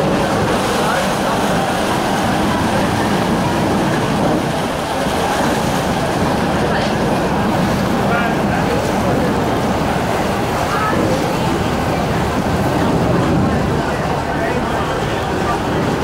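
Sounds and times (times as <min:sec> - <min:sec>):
boat engines rumbling: 0:00.0 - 0:16.0
hull churning water: 0:00.0 - 0:16.0.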